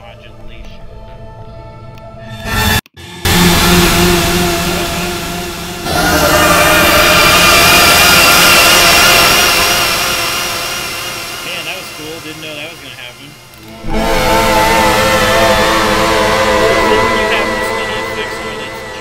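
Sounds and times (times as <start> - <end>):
distorted electric guitar chord: 3.0 - 19.0.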